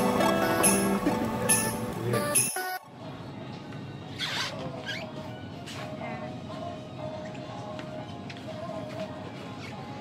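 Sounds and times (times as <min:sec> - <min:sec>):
faint music: 0:00.0 - 0:10.0
shop hum: 0:00.0 - 0:10.0.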